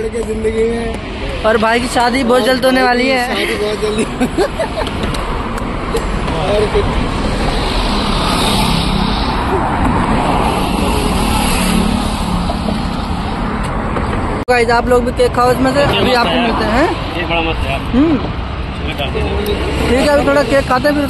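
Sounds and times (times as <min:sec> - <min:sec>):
traffic passing close by: 0:00.0 - 0:21.0.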